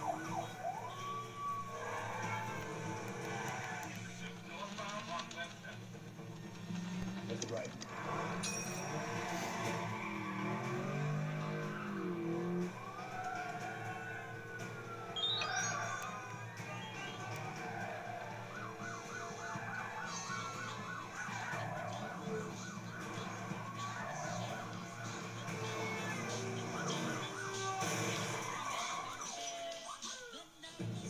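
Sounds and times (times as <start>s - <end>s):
siren wailing and warbling: 0.0s - 4.0s, 6.7s - 29.6s
music: 0.0s - 31.0s.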